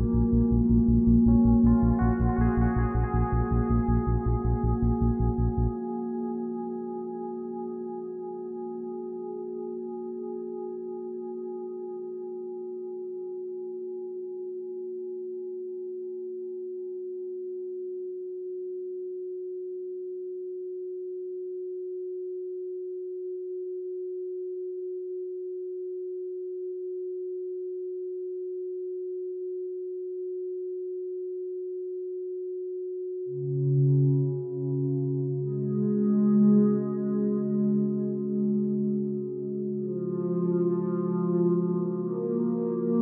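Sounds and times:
deeper tones: 0:00.0 - 0:06.6
steady pure tone: 0:00.0 - 0:15.6, 0:33.3 - 0:43.0.

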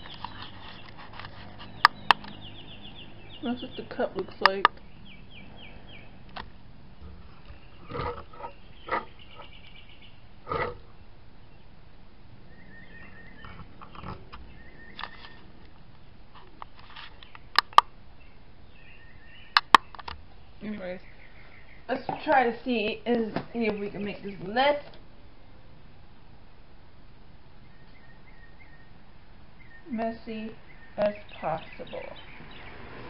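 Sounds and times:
sharp clicks: 0:00.0 - 0:02.4, 0:16.6 - 0:17.9, 0:19.6 - 0:20.2.

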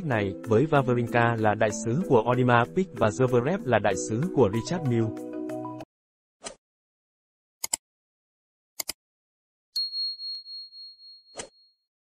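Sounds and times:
high bell ding: 0:09.8 - 0:11.7.

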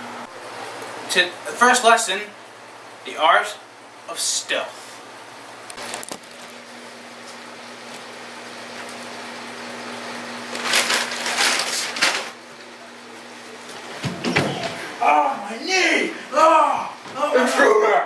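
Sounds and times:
steady low hum: 0:00.0 - 0:18.0
chip bag crinkling: 0:05.8 - 0:06.6, 0:10.5 - 0:12.4.

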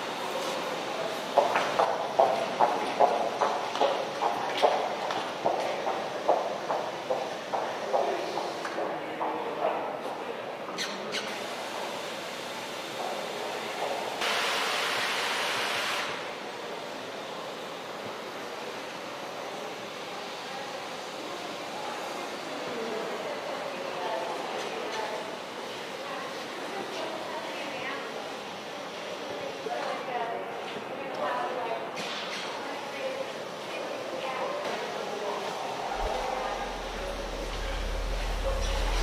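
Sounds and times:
indoor hall hum: 0:00.0 - 0:31.8, 0:32.6 - 0:39.0
footsteps on concrete floor: 0:01.3 - 0:09.8
distant indistinct voices: 0:16.2 - 0:39.0
background hiss and hum: 0:35.8 - 0:39.0.

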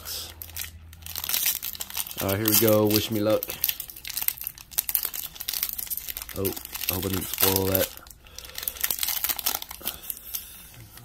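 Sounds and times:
foil wrapper crinkling: 0:00.1 - 0:11.0.

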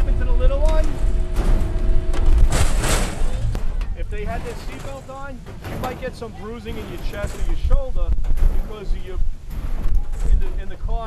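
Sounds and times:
loud burst of noise: 0:00.0 - 0:11.0
low rumble: 0:00.0 - 0:11.0
machine drive humming: 0:00.0 - 0:11.0.

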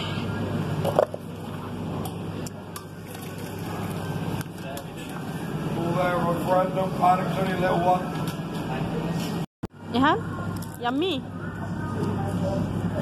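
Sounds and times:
drink fountain humming: 0:00.0 - 0:09.1.

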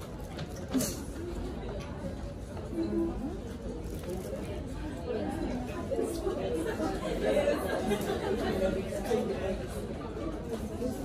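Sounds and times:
many women talking: 0:00.7 - 0:11.0.

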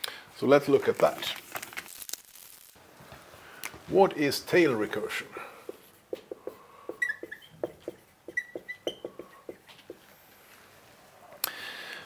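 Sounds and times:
marker writing on whiteboard: 0:05.6 - 0:10.1
marker squeaks: 0:05.7 - 0:10.0.

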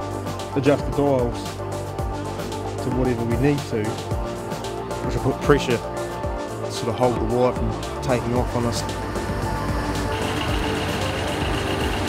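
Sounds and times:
engine running steadily: 0:08.4 - 0:12.0.

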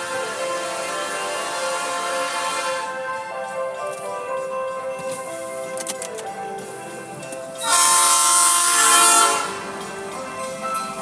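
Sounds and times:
freight train horn: 0:00.0 - 0:03.3, 0:07.6 - 0:09.8
background music: 0:00.0 - 0:11.0.

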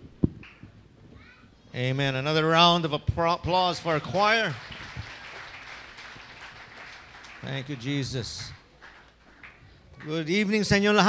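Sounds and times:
faint crowd applause: 0:03.8 - 0:11.0.

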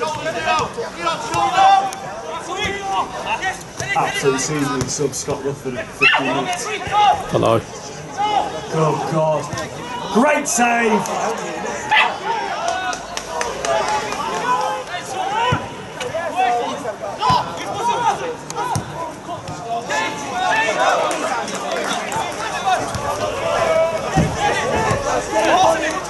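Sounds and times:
people calling and shouting: 0:00.0 - 0:26.0.

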